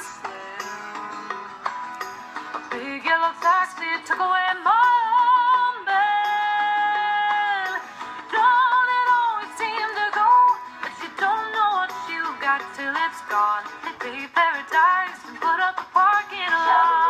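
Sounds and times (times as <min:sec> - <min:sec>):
woman singing with vibrato: 0:00.0 - 0:01.0, 0:02.7 - 0:17.0.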